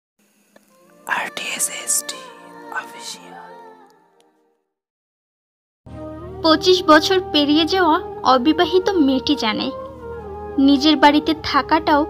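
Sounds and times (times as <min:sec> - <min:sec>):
person whispering: 0:01.0 - 0:03.6.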